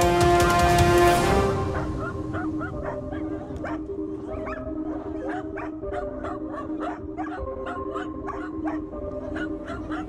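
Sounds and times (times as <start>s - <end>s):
dog yipping: 2.0s - 10.0s.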